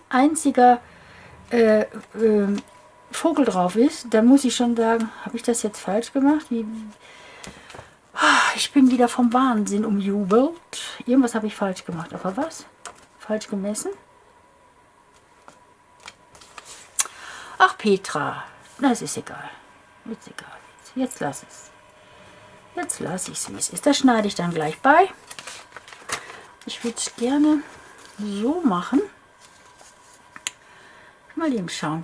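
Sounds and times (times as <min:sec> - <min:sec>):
paper rustling: 0:15.1 - 0:17.0, 0:23.0 - 0:30.5.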